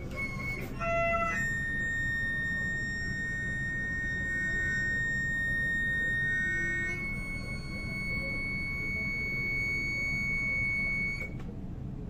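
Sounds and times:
low murmur of room: 0:00.0 - 0:12.0.

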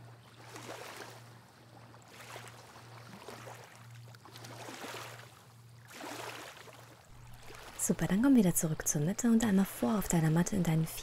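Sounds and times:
waves lapping on sandy shore: 0:00.0 - 0:08.3.

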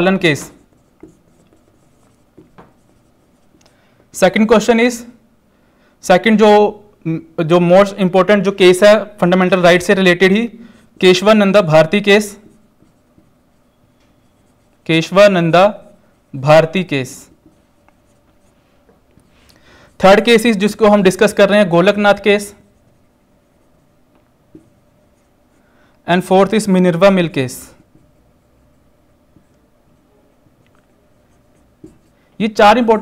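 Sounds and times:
marker writing on whiteboard: 0:00.0 - 0:03.7, 0:09.2 - 0:33.0.

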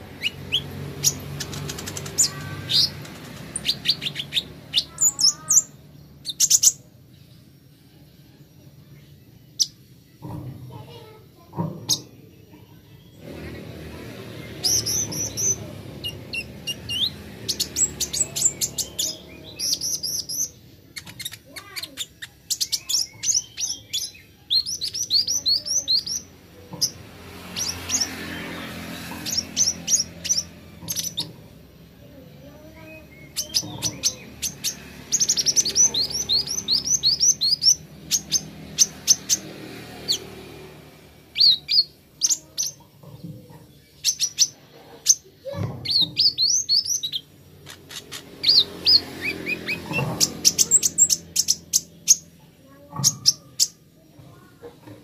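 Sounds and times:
sunbird singing high chirps: 0:00.0 - 0:10.2, 0:11.8 - 0:31.4, 0:32.0 - 0:43.0, 0:43.7 - 0:54.5.

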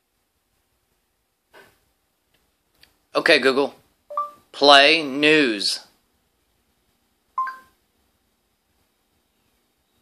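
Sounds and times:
rising two-tone phone beep: 0:04.1 - 0:04.4, 0:07.4 - 0:07.7.

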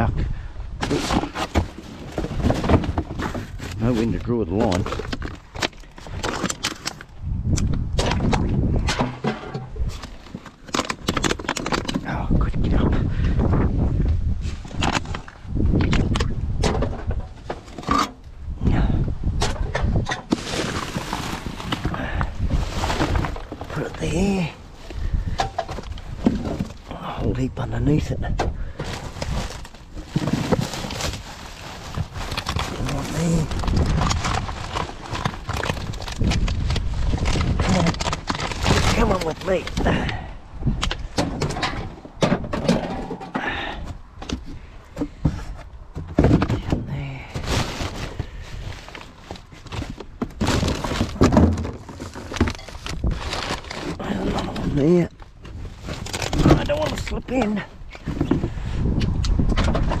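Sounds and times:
thunks and clatters: 0:00.8 - 0:07.1, 0:07.7 - 0:13.7, 0:14.5 - 0:24.4, 0:25.0 - 0:26.9, 0:28.2 - 0:58.6, 0:59.4 - 1:00.0
plastic bags and cardboard rustling: 0:00.8 - 0:07.2, 0:19.7 - 1:00.0.

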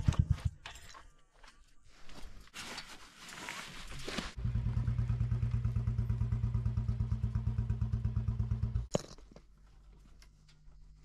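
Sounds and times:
motorcycle engine idling: 0:04.4 - 0:08.9.

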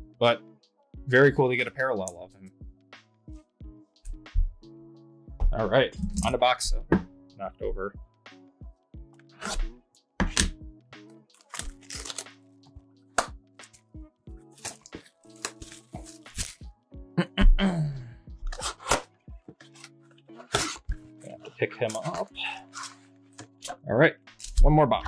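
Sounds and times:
quiet background music: 0:00.0 - 0:25.0.

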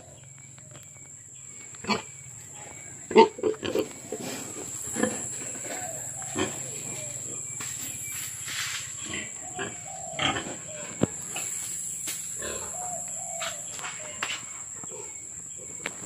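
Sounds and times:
pigs grunting: 0:01.7 - 0:07.6, 0:09.0 - 0:11.7, 0:12.3 - 0:15.8.

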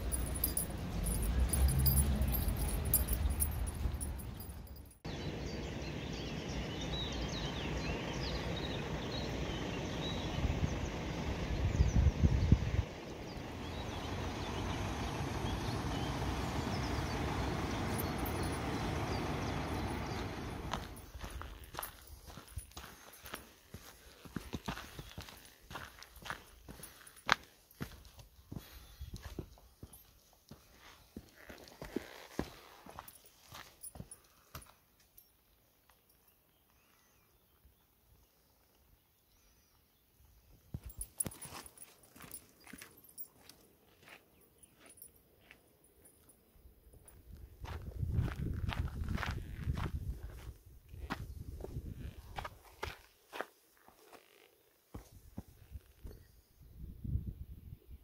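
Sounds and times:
wind rumble on microphone: 0:10.0 - 0:21.7, 0:47.3 - 0:52.6, 0:55.3 - 0:58.0
footsteps on rocky ground: 0:17.9 - 0:35.2, 0:40.7 - 0:45.6, 0:47.0 - 0:56.3.

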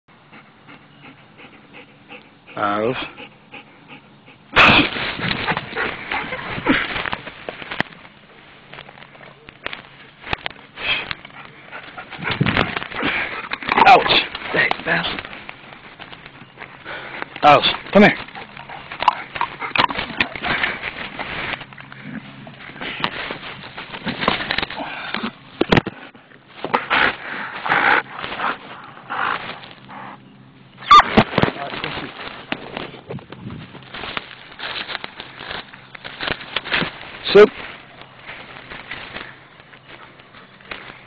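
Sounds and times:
dog panting: 0:00.1 - 0:04.5, 0:05.3 - 0:06.8, 0:11.2 - 0:15.3, 0:16.8 - 0:21.6.

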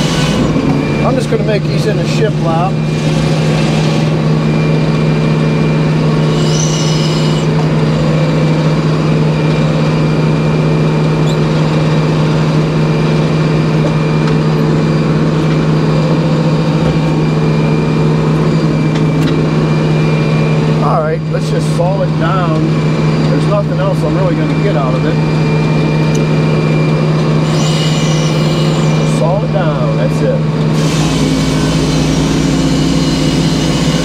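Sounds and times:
high squeal: 0:00.0 - 0:07.8, 0:13.9 - 0:30.1, 0:30.8 - 0:34.0
sawmill humming: 0:00.0 - 0:34.0.

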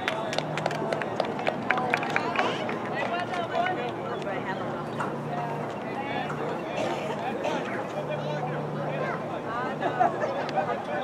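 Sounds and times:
voices calling out: 0:00.0 - 0:11.0.

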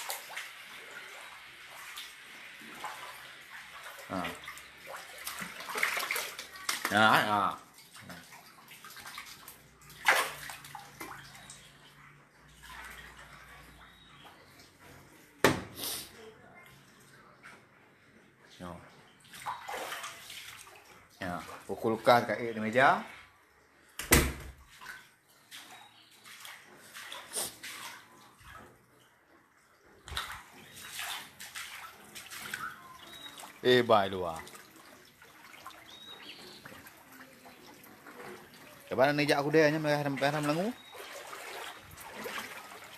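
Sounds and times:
water splashing and sloshing: 0:00.0 - 0:42.9.

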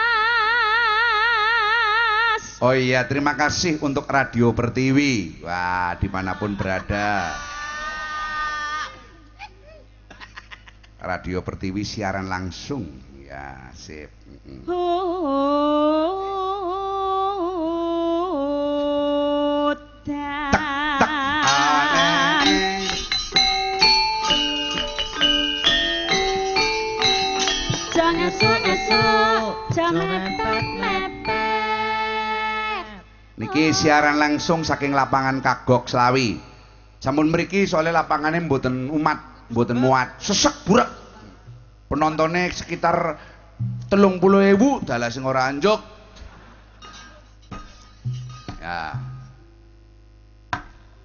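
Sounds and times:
gamelan metallophones playing: 0:21.4 - 0:32.8
low drum tone: 0:43.6 - 0:44.2.

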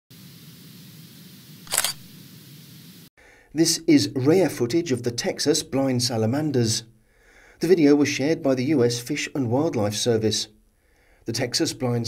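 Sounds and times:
low hum with hiss: 0:00.1 - 0:03.7.

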